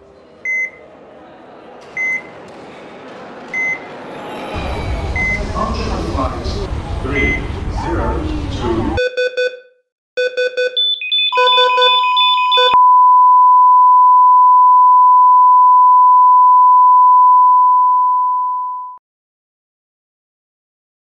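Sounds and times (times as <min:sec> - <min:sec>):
buzzy electronic glitch beeps: 0:10.6 - 0:12.8.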